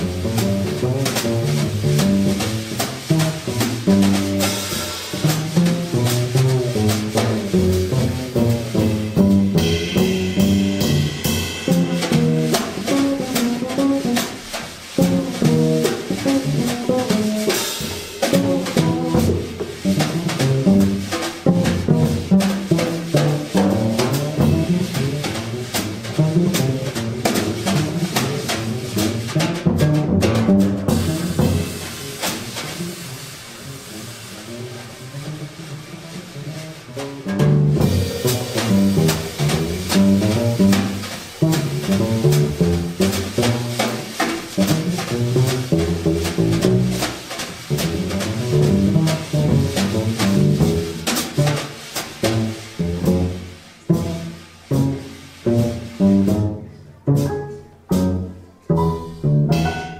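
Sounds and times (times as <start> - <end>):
cymbals and snare drum: 0.0 - 59.9
jazz piano: 0.0 - 59.9
upright bass lines: 37.4 - 43.4.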